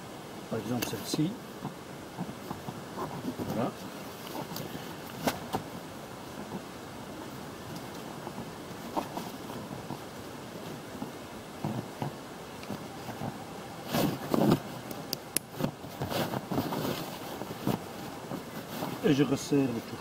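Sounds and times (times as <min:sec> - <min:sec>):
straps and buckles rustling: 0:02.2 - 0:06.7, 0:07.6 - 0:20.0
wind noise on microphone: 0:04.4 - 0:19.1.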